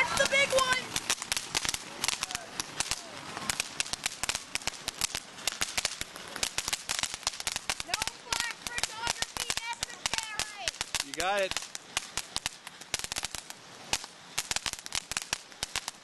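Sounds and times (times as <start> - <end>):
firework spraying and crackling: 0.0 - 16.0
sharp pops: 0.0 - 16.0.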